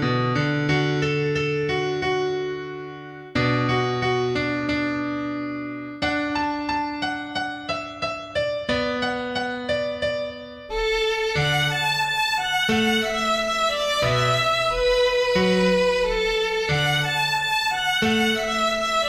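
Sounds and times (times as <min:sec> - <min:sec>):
piano keyboard chords: 0:00.0 - 0:19.0.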